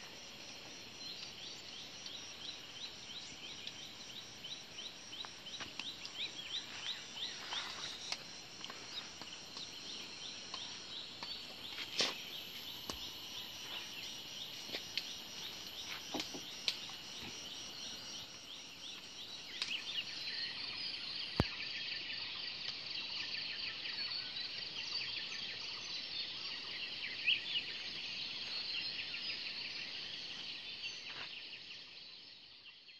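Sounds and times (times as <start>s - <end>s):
insects buzzing: 0.0s - 32.4s.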